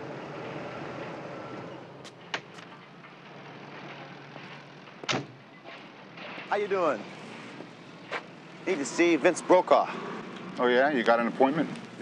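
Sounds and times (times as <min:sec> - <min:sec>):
outdoor background hum: 0:00.0 - 0:12.0.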